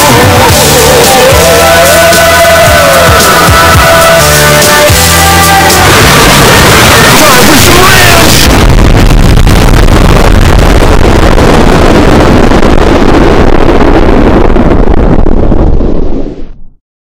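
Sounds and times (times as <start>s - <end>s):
loud distorted noise: 0.0s - 16.8s.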